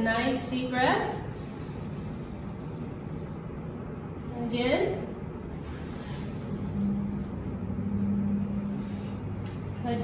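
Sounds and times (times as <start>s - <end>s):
low hum with held tone: 0.0s - 10.0s
person breathing deeply: 1.2s - 2.5s.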